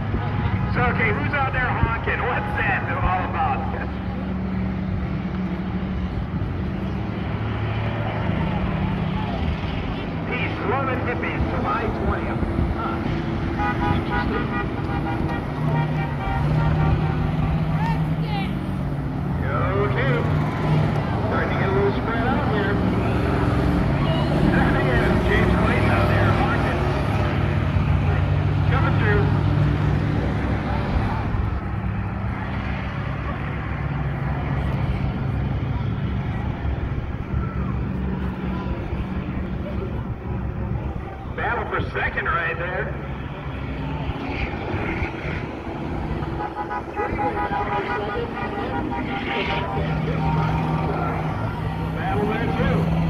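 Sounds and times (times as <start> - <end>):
bus engines droning: 0.0 - 53.0.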